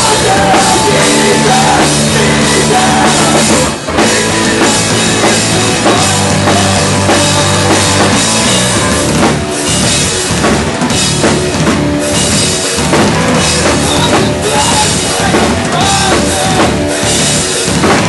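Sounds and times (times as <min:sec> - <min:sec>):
bass guitar: 0:00.0 - 0:18.0
distorted electric guitar: 0:00.0 - 0:18.0
drum kit: 0:00.0 - 0:18.0.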